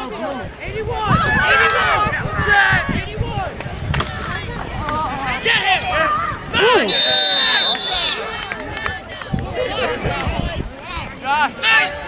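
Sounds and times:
spectators shouting and chattering: 0:00.0 - 0:12.0
referee's whistle: 0:06.8 - 0:08.3.

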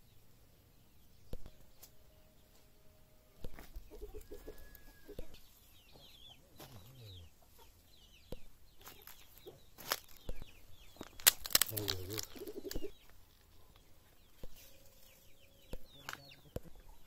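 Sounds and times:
small birds chirping: 0:00.0 - 0:17.0
chicken clucking: 0:03.3 - 0:11.1, 0:11.8 - 0:13.2, 0:13.8 - 0:17.0
rustling: 0:08.7 - 0:16.2.

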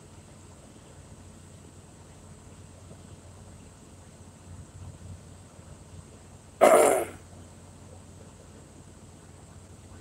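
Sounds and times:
man coughing: 0:06.6 - 0:07.2.

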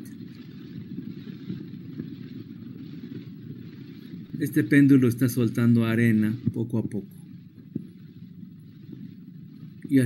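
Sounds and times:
steady low rumbling: 0:00.0 - 0:10.0.

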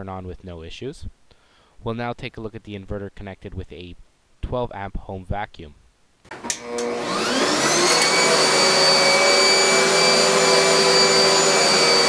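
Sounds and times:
vacuum cleaner switch click: 0:06.3 - 0:07.0
vacuum cleaner motor whining: 0:06.3 - 0:12.0.

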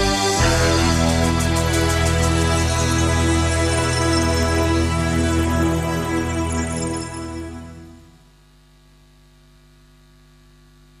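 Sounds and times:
faint mains hum: 0:06.8 - 0:11.0.

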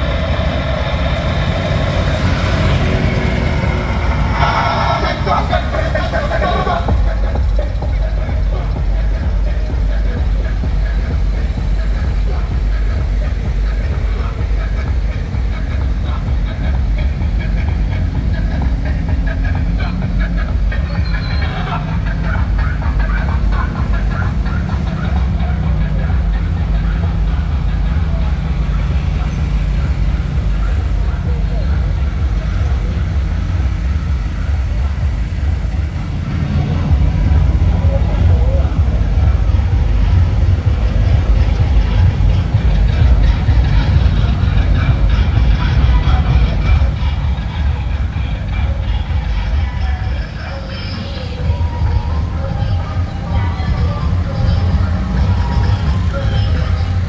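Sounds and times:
bass-heavy dance music from loudspeakers: 0:00.0 - 0:57.0
vehicle engines running: 0:00.0 - 0:57.0.

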